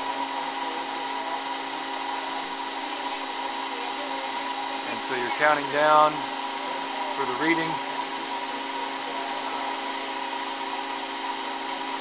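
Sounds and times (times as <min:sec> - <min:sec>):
motor humming: 0:00.0 - 0:12.0.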